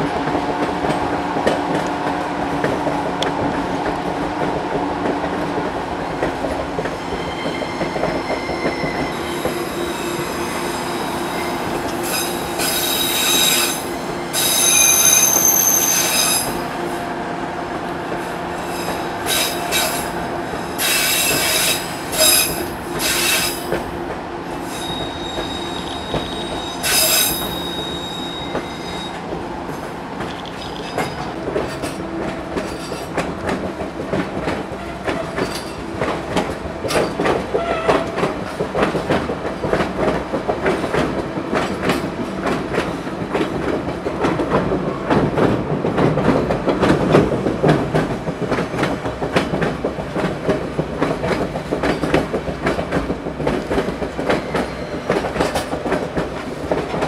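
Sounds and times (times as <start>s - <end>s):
train cars rumbling: 0.0s - 57.0s
rail clatter: 28.5s - 57.0s.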